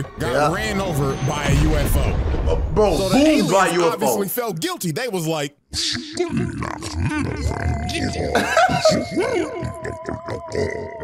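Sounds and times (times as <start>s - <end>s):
garbled alien character voice: 5.7s - 11.0s.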